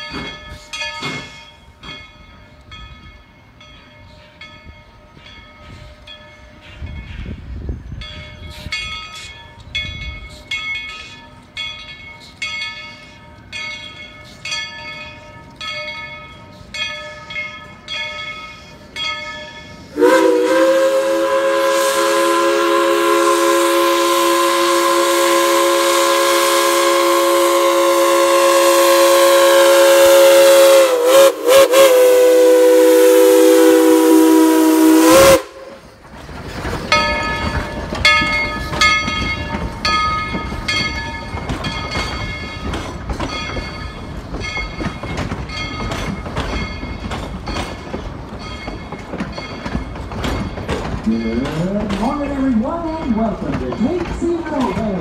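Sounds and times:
locomotive bell ringing: 0:00.0 - 0:20.6, 0:35.2 - 0:55.0
steam whistle blast: 0:19.9 - 0:35.8.

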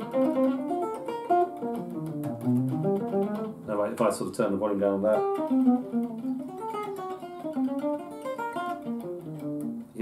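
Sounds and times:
quiet electric guitar jazz lines: 0:00.0 - 0:10.0.

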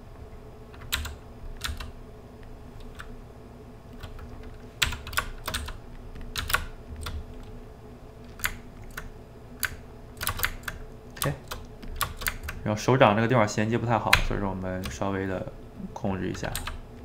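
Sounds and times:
keyboard and mouse clicking: 0:04.0 - 0:07.5, 0:08.2 - 0:12.6.

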